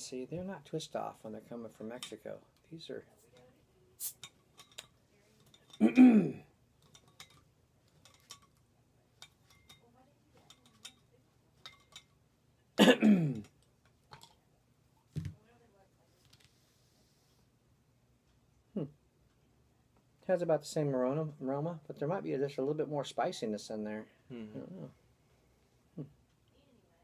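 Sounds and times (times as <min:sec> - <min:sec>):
man clearing throat: 0:05.8 - 0:06.5, 0:12.8 - 0:13.5.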